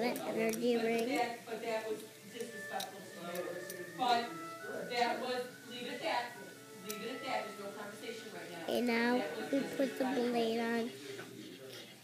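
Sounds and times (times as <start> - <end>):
indistinct background voices: 0.0 - 12.0.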